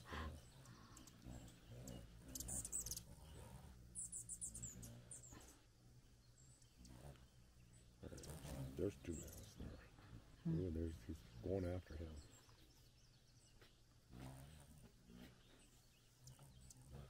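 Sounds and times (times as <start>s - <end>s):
hummingbirds chirping: 0.0s - 17.0s.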